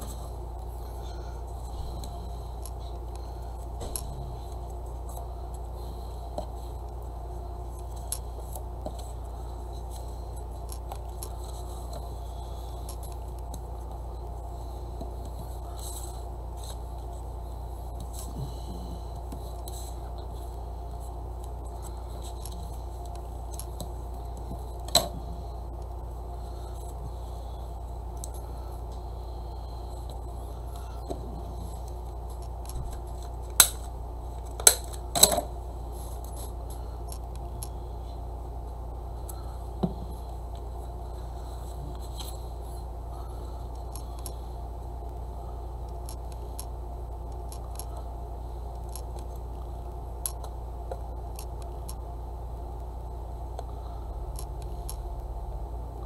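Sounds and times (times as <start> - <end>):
steady low hum: 0.0 - 56.0.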